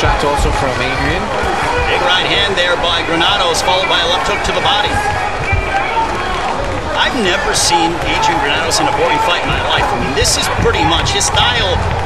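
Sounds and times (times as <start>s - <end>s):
faint voices and shouts: 0.0s - 12.0s.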